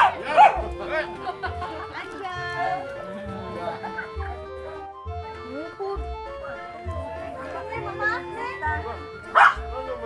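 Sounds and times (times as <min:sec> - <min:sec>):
dog bark: 0:00.0 - 0:00.7, 0:09.3 - 0:09.7
background music: 0:00.0 - 0:10.0
voices of a gathering: 0:00.0 - 0:10.0.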